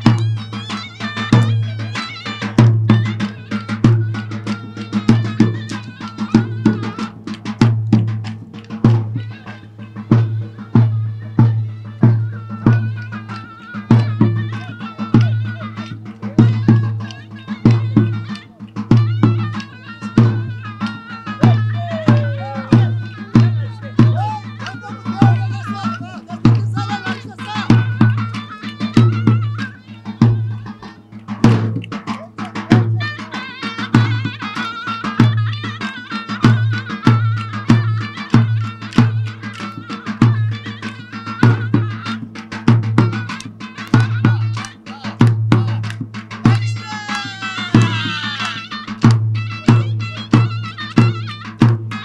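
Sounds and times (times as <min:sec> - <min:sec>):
drum beats: 0:00.0 - 0:52.0
wind instrument melody: 0:00.0 - 0:52.0
bass drum beat: 0:43.9 - 0:48.2.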